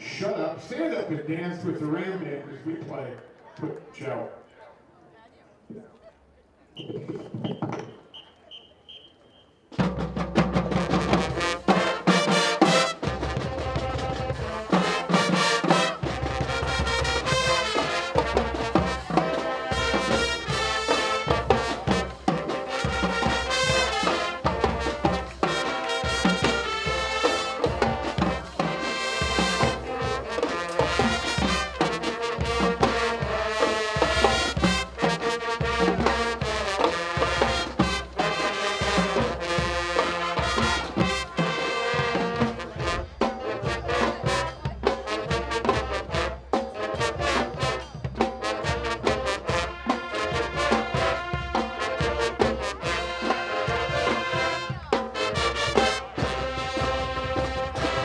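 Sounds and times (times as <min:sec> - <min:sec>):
marching band playing: 0:00.0 - 0:04.4, 0:06.8 - 0:58.0
drumline beat: 0:09.7 - 0:58.0.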